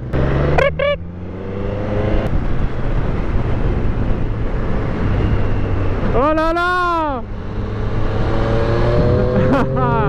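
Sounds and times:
motorcycle engine accelerating: 0:00.0 - 0:06.2, 0:07.2 - 0:10.0
wind rush at road speed: 0:00.0 - 0:10.0.

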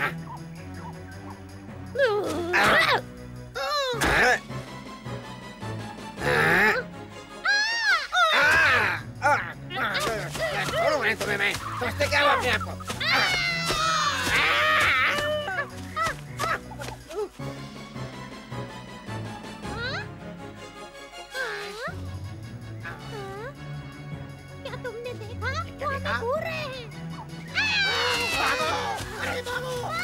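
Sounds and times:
background music with low drone: 0:00.0 - 0:30.0.

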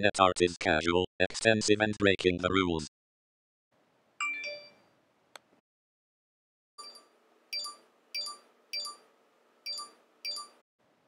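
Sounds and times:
message alert dings: 0:04.2 - 0:04.8, 0:07.6 - 0:09.0, 0:09.7 - 0:10.6.

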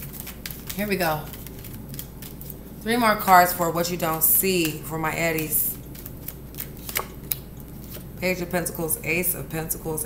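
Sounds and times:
cards being shuffled: 0:00.0 - 0:02.6, 0:04.6 - 0:08.1.

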